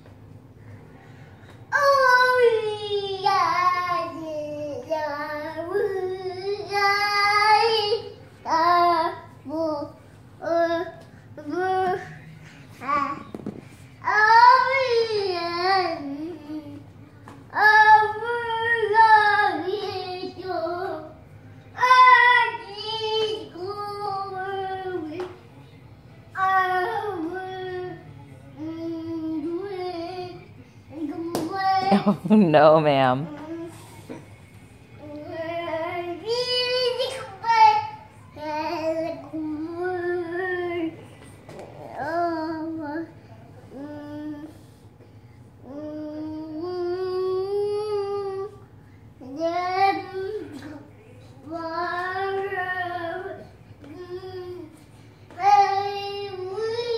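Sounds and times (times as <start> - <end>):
toddler girl singing: 1.7 - 12.2, 14.0 - 21.2, 21.8 - 25.4, 26.4 - 28.0, 28.6 - 32.0, 35.0 - 44.7, 45.6 - 48.6, 49.2 - 56.9.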